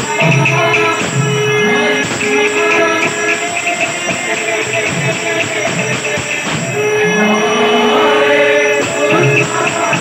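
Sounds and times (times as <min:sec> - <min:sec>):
hand drums: 0:00.0 - 0:10.0.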